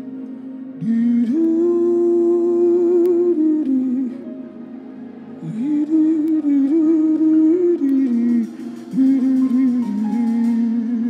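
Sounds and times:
sustained musical backing tone: 0:00.0 - 0:11.0.

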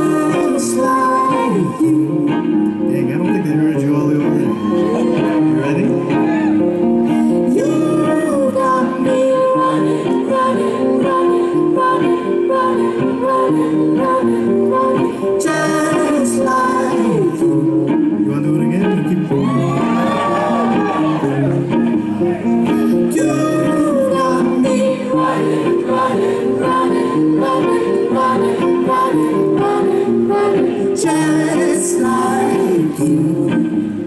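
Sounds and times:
acoustic guitar: 0:00.0 - 0:34.0.

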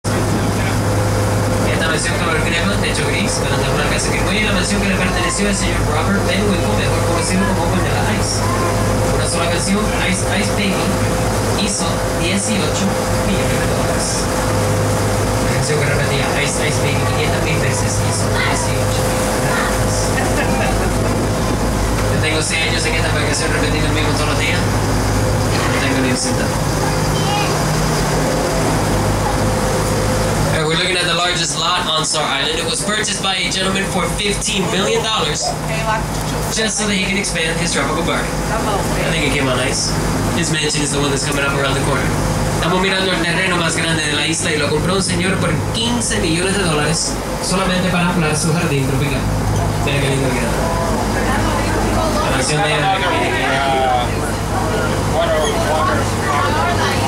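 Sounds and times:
boat engine humming: 0:00.0 - 0:57.0
indistinct voices: 0:00.0 - 0:57.0
water noise: 0:00.0 - 0:57.0
wind: 0:00.0 - 0:57.0
person speaking: 0:32.4 - 0:37.2.

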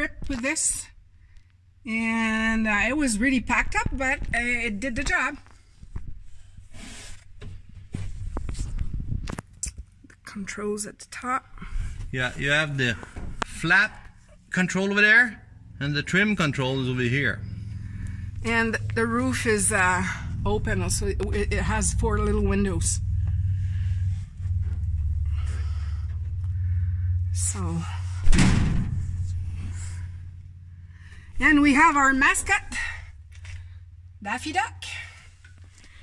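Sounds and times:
steady low rumble: 0:00.0 - 0:36.0
faint rustles: 0:05.3 - 0:10.0, 0:17.3 - 0:31.6.

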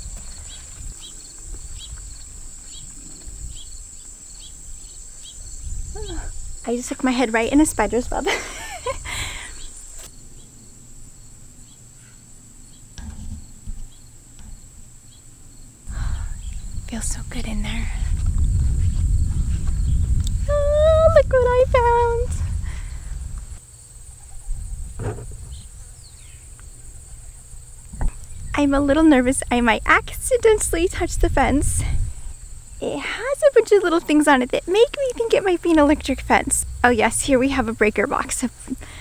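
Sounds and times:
crickets droning: 0:00.0 - 0:39.0
loud low rumble: 0:15.9 - 0:23.6, 0:35.2 - 0:38.8.

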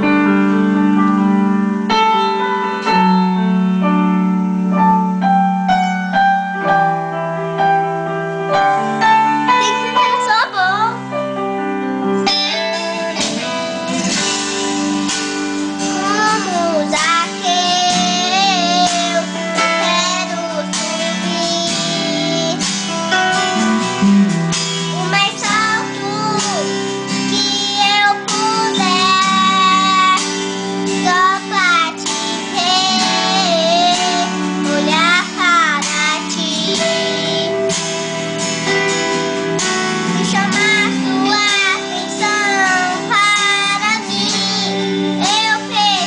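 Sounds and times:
guitar backing music: 0:00.0 - 0:46.0
boy singing: 0:15.8 - 0:22.9, 0:24.9 - 0:37.8, 0:40.0 - 0:46.0.

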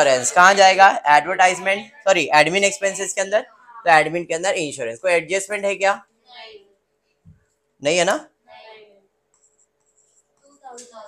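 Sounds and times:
person speaking: 0:00.0 - 0:06.0.

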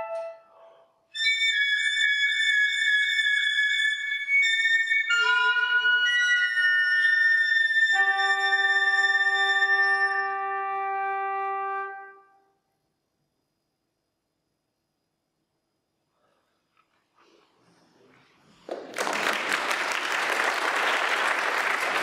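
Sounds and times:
chamber ensemble playing: 0:00.0 - 0:12.1.

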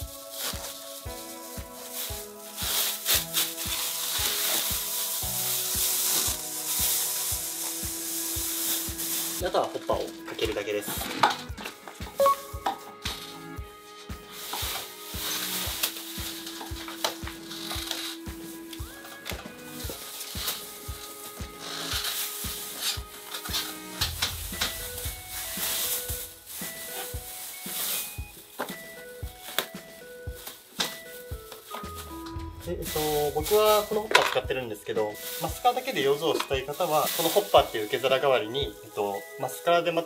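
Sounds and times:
background music with steady beat: 0:00.0 - 0:40.0
plastic film crinkling: 0:00.0 - 0:40.0.

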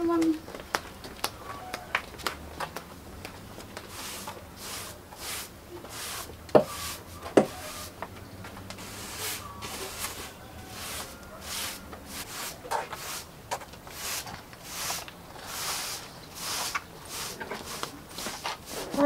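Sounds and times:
broom sweeping concrete floor: 0:03.7 - 0:08.0, 0:08.7 - 0:19.0.

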